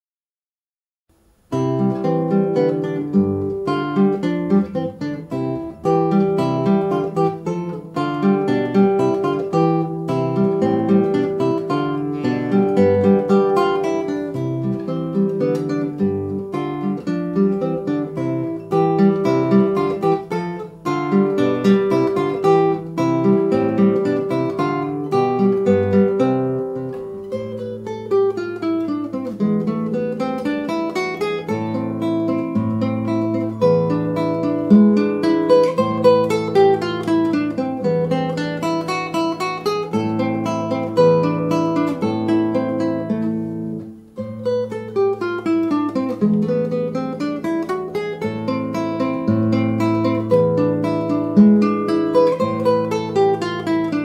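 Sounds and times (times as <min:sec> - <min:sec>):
solo acoustic guitar: 0:01.1 - 0:54.0.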